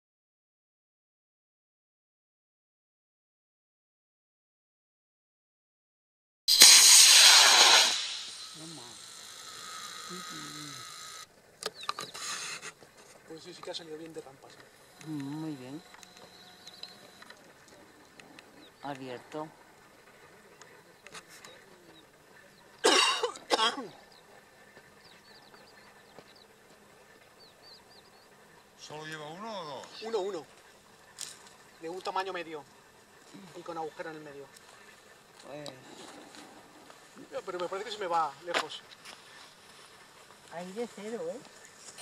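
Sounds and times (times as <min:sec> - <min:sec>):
rocket motor rushing hiss: 0:06.5 - 0:11.3
faint high chirps: 0:14.8 - 0:19.0.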